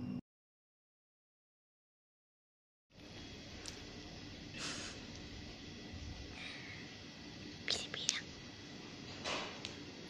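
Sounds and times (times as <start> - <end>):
person whispering: 7.6 - 8.3.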